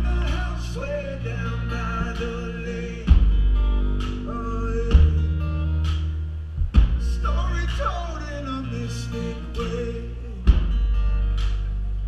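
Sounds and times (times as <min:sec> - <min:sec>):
live band through loudspeakers: 0:00.0 - 0:12.0.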